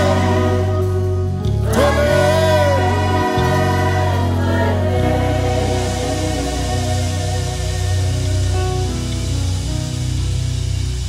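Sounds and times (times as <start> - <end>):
choir and congregation singing: 0.0 - 9.4
keyboards and bass: 0.0 - 11.0.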